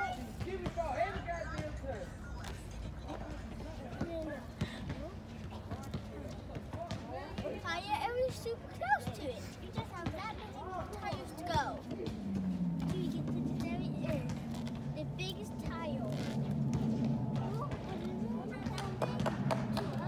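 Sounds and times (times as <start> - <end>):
steady low hum: 0.0 - 6.9, 8.6 - 20.0
voices: 0.0 - 20.0.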